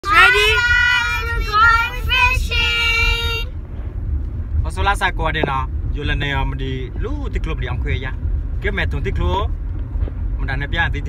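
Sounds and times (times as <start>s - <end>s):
children singing together: 0.0s - 3.1s
car cabin rumble: 0.0s - 11.0s.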